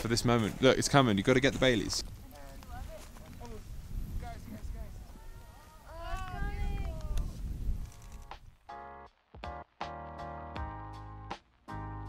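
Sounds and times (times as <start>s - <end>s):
wind rumble on microphone: 1.3s - 8.6s
music with plucked and keyboard notes: 8.7s - 12.0s.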